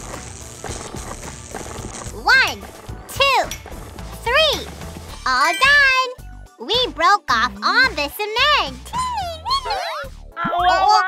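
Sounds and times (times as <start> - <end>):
cartoon background music: 1.8 - 11.0.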